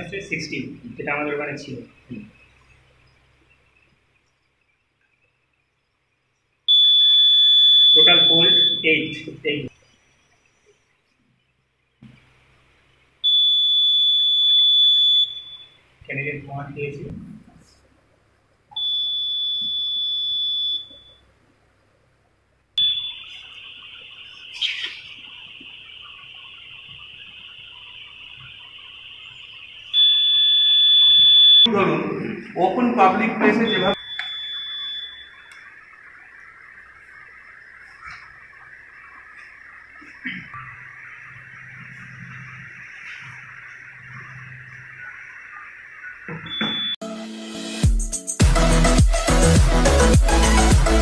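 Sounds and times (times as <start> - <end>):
faint room noise: 0.0 - 47.0
long high-pitched beep: 6.7 - 9.4, 13.3 - 15.8, 22.8 - 23.6, 30.0 - 31.7, 33.5 - 35.6, 46.3 - 47.0.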